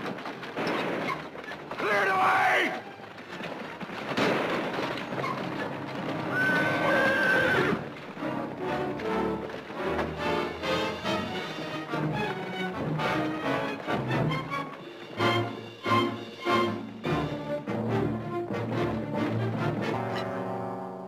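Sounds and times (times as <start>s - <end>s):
orchestral music: 5.0s - 21.0s
horse whinnying: 6.2s - 8.0s.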